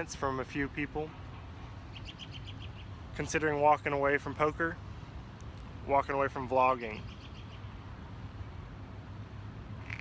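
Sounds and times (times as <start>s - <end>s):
small bird chirping: 1.9s - 2.9s.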